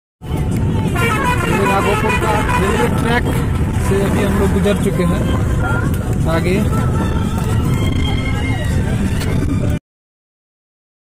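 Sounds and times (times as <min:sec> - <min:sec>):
vehicle engine and road rumble: 0:00.2 - 0:09.8
voices talking: 0:01.0 - 0:08.8.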